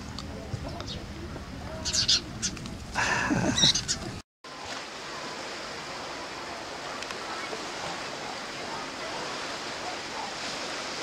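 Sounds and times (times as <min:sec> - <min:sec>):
small waves lapping: 0:00.0 - 0:11.0
sparrows chirping: 0:01.8 - 0:02.6, 0:03.4 - 0:04.1.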